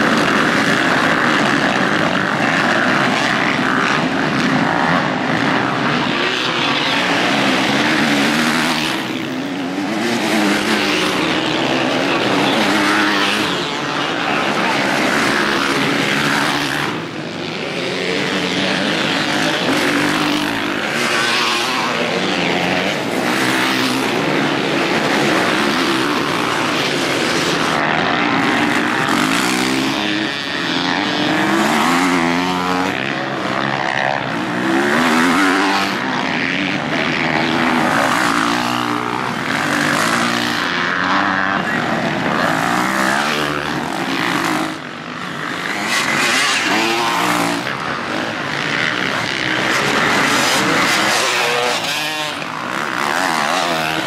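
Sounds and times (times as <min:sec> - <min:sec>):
dirt bike engines revving: 0:00.0 - 0:54.0.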